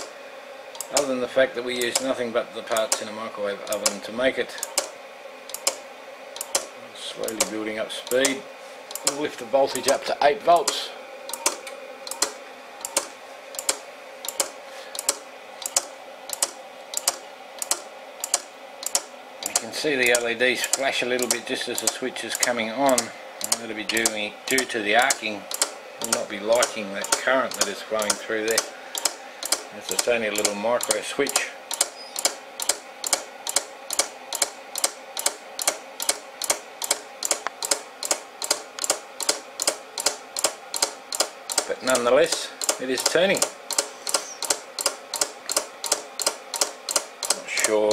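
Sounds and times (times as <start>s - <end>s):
faint steady hum: 0.0s - 47.9s
micro switch clicking: 5.5s - 5.8s, 8.1s - 9.2s.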